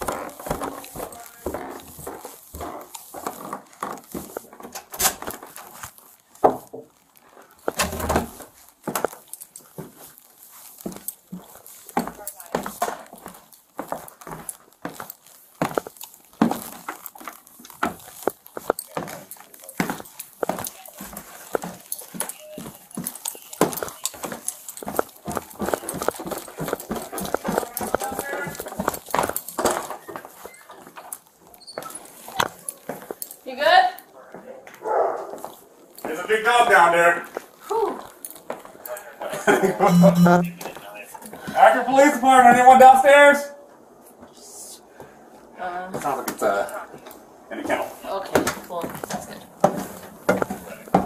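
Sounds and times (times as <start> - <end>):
dog barking: 34.8 - 35.4.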